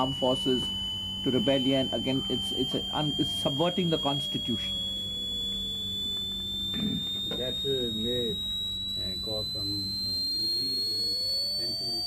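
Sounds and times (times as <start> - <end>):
high-pitched electronic whine: 0.0 - 12.0
low hum: 0.0 - 12.0.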